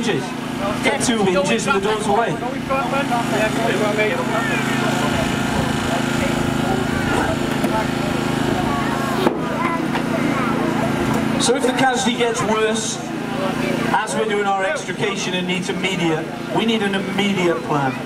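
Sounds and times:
small engine running: 0:00.0 - 0:18.0.

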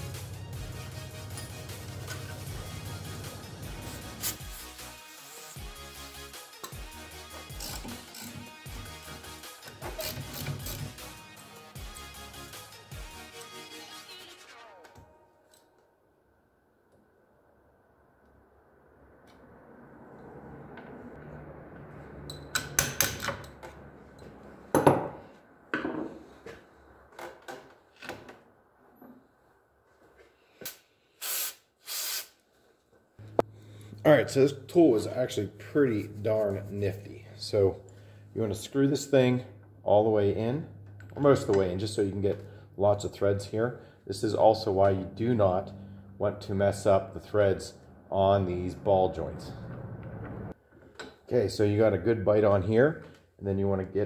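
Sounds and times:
background music: 0:00.0 - 0:15.8.

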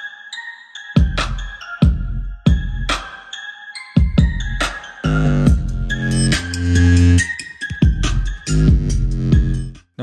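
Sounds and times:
bass-heavy electronic music: 0:01.0 - 0:03.3, 0:04.0 - 0:10.0.

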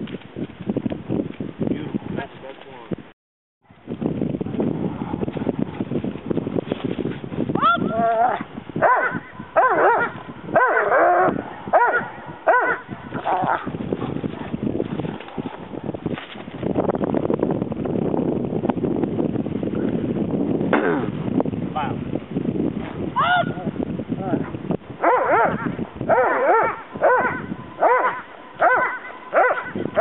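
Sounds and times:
dog yelping: 0:07.6 - 0:13.7, 0:25.0 - 0:30.0.

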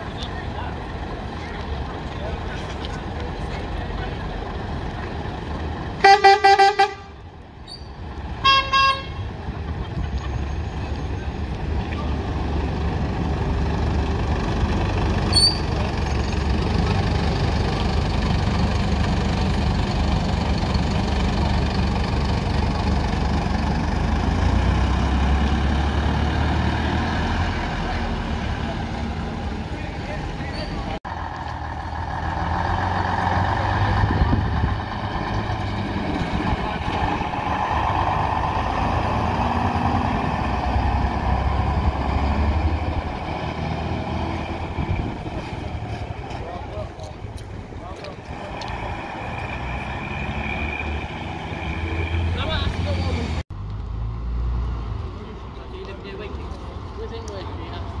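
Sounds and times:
diesel bus engines driving past: 0:00.0 - 0:58.0.

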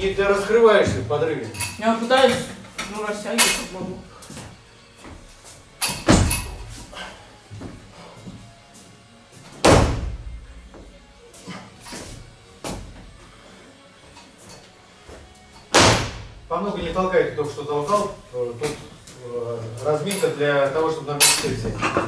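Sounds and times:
barbell thudding on platform: 0:05.9 - 0:06.7.

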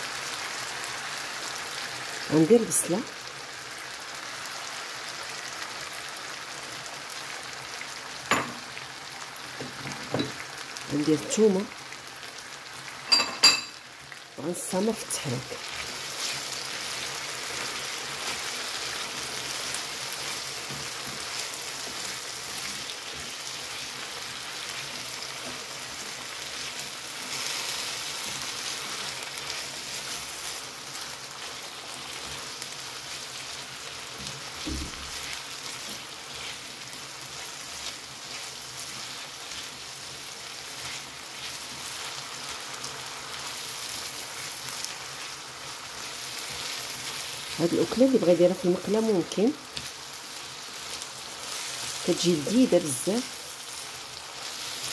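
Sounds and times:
potatoes and onion sizzling in oil: 0:00.0 - 0:54.9.

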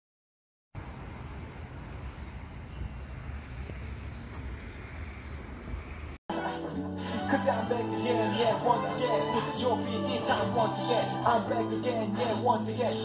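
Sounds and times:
small bird chirping: 0:01.6 - 0:03.3.

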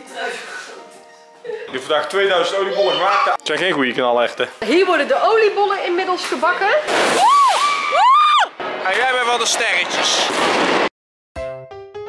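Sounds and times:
children whooping: 0:07.2 - 0:08.5.

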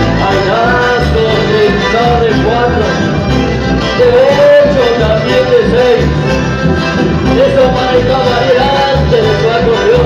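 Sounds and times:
accordion and bandoneon melody: 0:00.0 - 0:10.0
acoustic guitar: 0:00.0 - 0:10.0
electric bass: 0:00.0 - 0:10.0.

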